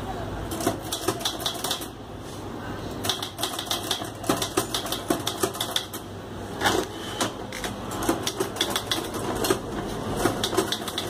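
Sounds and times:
manual typewriter typing: 0:00.5 - 0:01.9, 0:03.0 - 0:06.0, 0:07.2 - 0:11.0.

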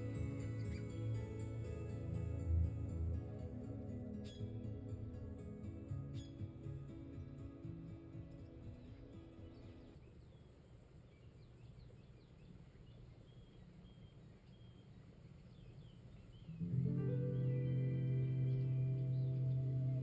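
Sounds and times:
soft ambient music: 0:00.0 - 0:10.6, 0:11.2 - 0:20.0
faint bird chirps: 0:04.0 - 0:05.3, 0:05.9 - 0:07.3, 0:07.9 - 0:20.0.

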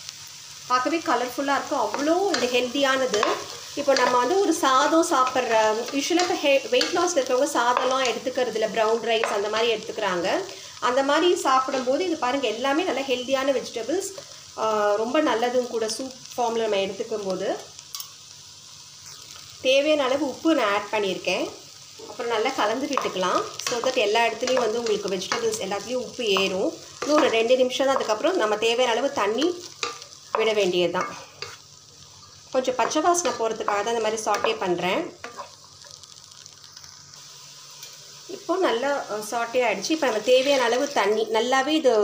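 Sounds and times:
vegetables sizzling in a pan: 0:00.0 - 0:42.0.

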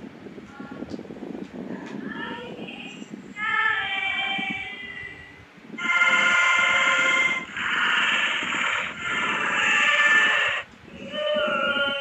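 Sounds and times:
buzzy electronic tones: 0:05.8 - 0:10.7.

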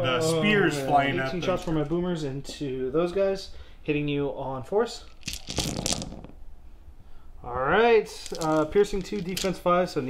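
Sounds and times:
dice clattering on a mat: 0:05.1 - 0:06.4, 0:08.1 - 0:09.6.

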